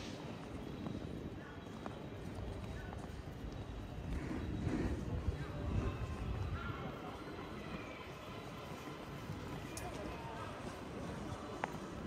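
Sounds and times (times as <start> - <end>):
footsteps on cobblestones: 0.0 - 12.0
street ambience hum: 0.0 - 12.0.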